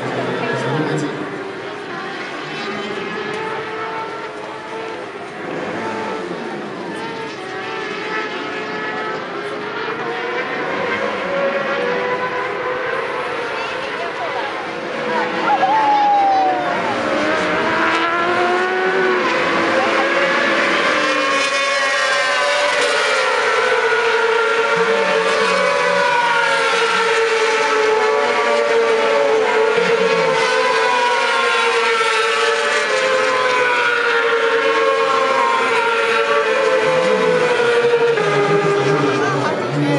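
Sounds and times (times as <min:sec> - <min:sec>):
racing motorcycles at high revs: 0:00.0 - 0:39.9.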